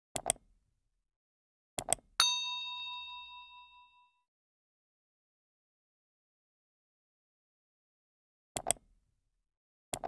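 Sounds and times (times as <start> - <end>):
notification bell ding: 2.2 - 4.2.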